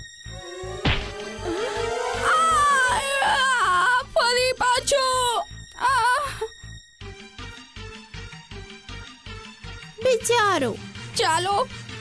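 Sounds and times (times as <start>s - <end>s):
background music with beat: 0.4s - 2.8s
boy crying wail: 1.4s - 4.2s.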